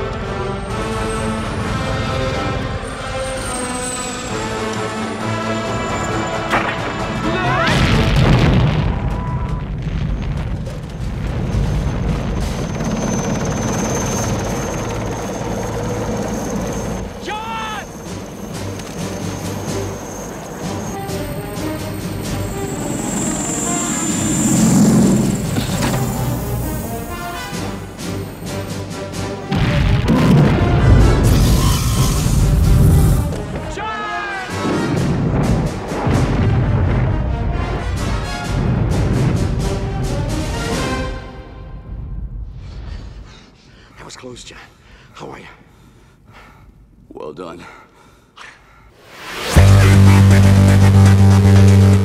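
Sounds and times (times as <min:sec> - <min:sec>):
orchestral action score: 0:00.0 - 0:09.7, 0:11.2 - 0:42.0, 0:49.4 - 0:52.0
booms: 0:06.5 - 0:12.8, 0:29.5 - 0:33.7, 0:34.6 - 0:39.9
helicopter rotor and engine: 0:11.3 - 0:29.4.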